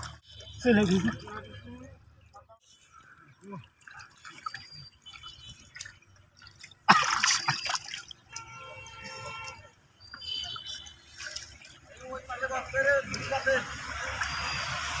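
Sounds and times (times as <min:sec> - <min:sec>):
water drips and squelches: 0:00.0 - 0:15.0
hands sloshing in muddy water: 0:02.8 - 0:09.6, 0:10.4 - 0:15.0
splash in mud: 0:06.8 - 0:08.4.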